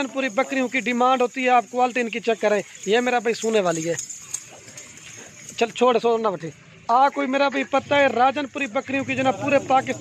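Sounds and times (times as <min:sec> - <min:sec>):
man's voice: 0:00.0 - 0:04.1, 0:05.6 - 0:10.0.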